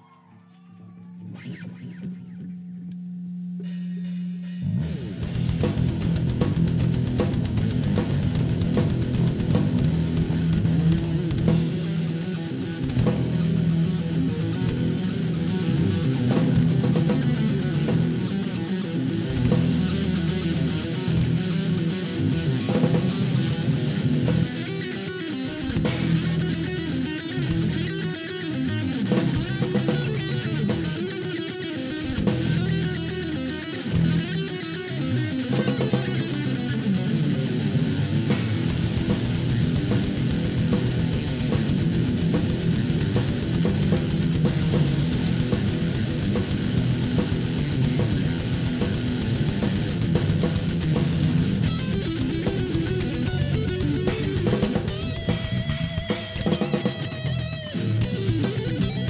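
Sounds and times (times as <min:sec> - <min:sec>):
electric guitar: 0:00.8 - 0:03.0, 0:03.6 - 0:59.0
electric bass: 0:01.3 - 0:59.0
drum kit: 0:03.5 - 0:59.0.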